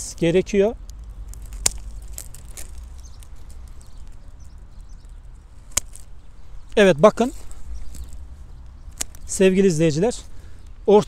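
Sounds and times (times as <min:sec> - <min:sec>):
pruning shears snipping: 0:00.1 - 0:09.8.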